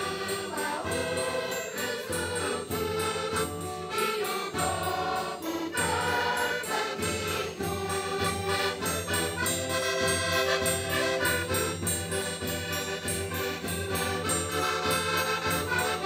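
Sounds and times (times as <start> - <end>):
accordions: 0.0 - 16.0
children's choir singing: 0.0 - 16.0.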